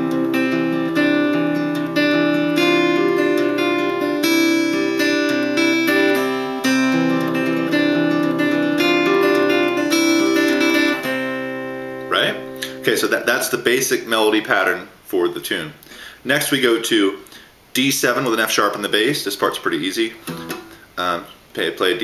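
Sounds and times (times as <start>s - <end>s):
fingerpicked acoustic guitar: 0.0s - 13.4s, 20.2s - 20.9s.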